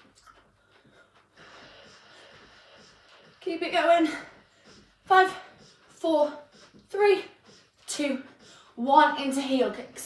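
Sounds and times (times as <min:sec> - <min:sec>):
faint breathing: 0:00.6 - 0:03.4, 0:04.2 - 0:08.8.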